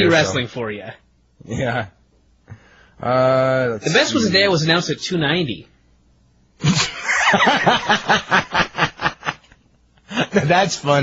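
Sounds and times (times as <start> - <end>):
man laughing: 6.6 - 10.7.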